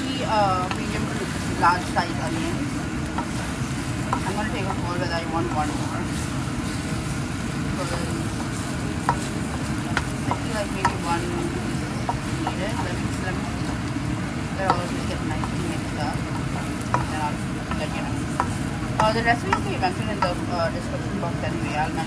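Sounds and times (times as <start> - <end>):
meat and onions sizzling in a pan: 0.0 - 22.0
spatula scraping and knocking pan: 0.6 - 22.0.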